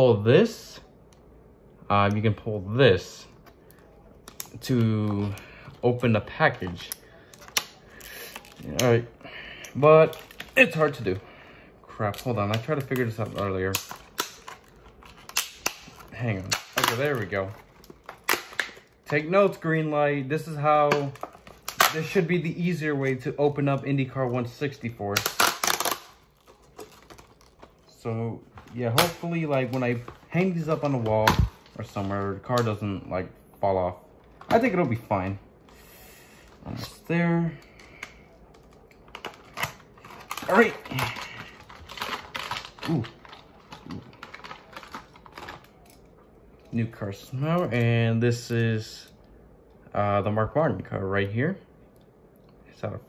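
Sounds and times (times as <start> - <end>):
plastic crinkling: 3.2 - 46.8.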